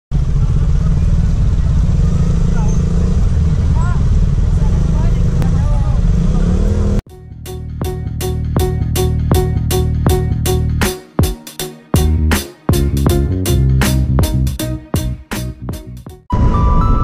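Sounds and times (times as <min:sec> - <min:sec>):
street traffic: 0:00.1 - 0:10.8
motorcycle engine idling: 0:00.2 - 0:02.6
intro music with regular beat: 0:07.1 - 0:16.3.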